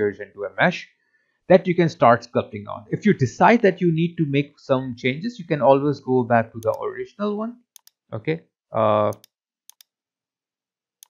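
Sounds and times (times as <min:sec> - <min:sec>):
computer mouse clicking: 0:06.6 - 0:06.8, 0:07.8 - 0:08.0, 0:09.1 - 0:09.9
person saying uh: 0:08.2 - 0:09.1.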